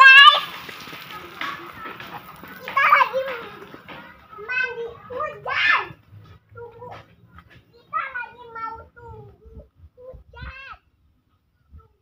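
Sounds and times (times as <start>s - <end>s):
young child shouting: 0.0s - 0.6s, 4.4s - 6.0s, 10.0s - 10.9s.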